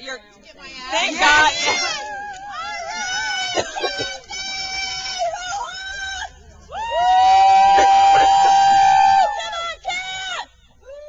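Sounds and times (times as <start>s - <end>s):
voices in high held cheer: 0.8s - 11.0s.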